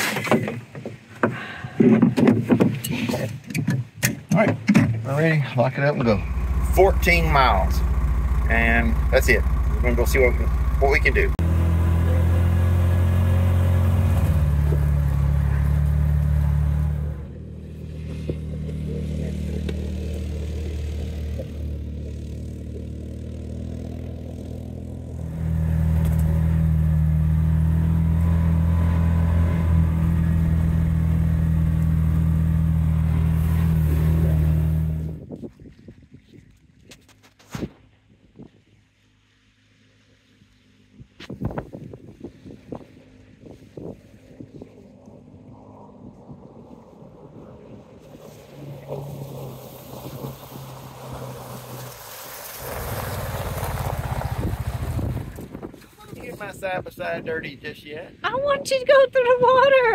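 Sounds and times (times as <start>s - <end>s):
utility vehicle engine running: 6.0s - 35.3s.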